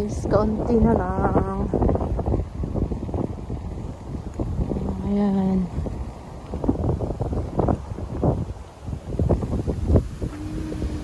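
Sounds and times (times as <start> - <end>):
wind buffeting microphone: 0.0 - 11.0
steady low tone: 9.9 - 11.0.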